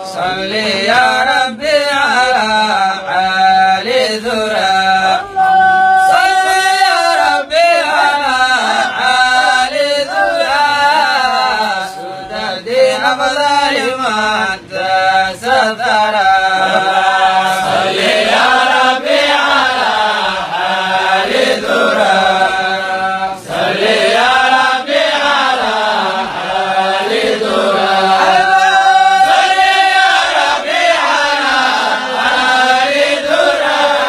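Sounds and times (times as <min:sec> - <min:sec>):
man chanting unaccompanied: 0:00.0 - 0:34.0.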